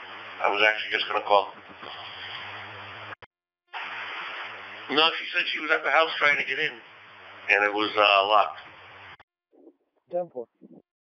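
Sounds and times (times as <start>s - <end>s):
radio channel hiss: 0.0s - 3.2s, 3.8s - 9.2s.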